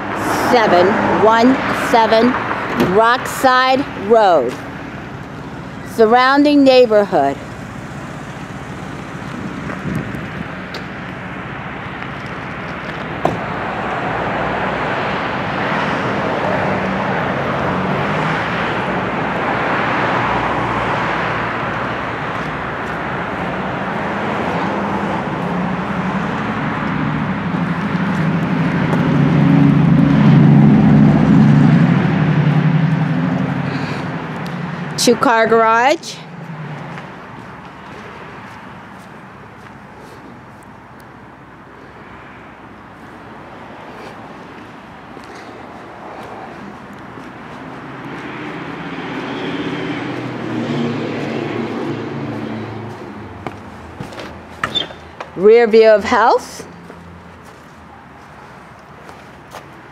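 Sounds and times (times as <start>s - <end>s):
road noise: 0.0s - 59.9s
vehicle engine running: 2.9s - 13.8s, 21.4s - 41.6s, 44.2s - 59.9s.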